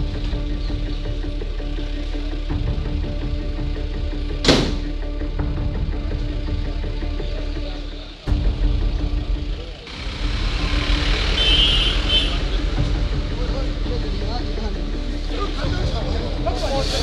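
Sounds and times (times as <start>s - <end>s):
street noise: 0.0s - 17.0s
vehicle running: 0.0s - 17.0s
crowd voices: 5.6s - 17.0s.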